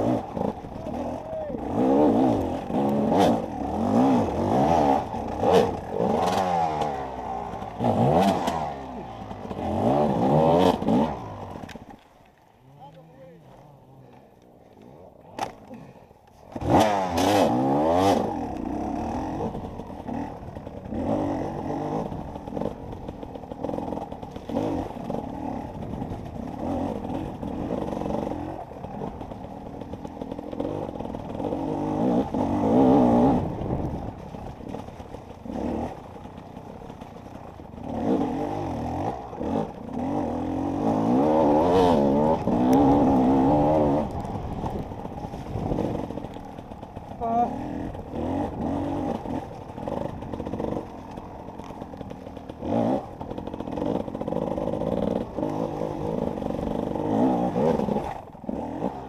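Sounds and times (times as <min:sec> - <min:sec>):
dirt bike engine revving: 0:00.0 - 0:11.9, 0:15.4 - 0:59.0.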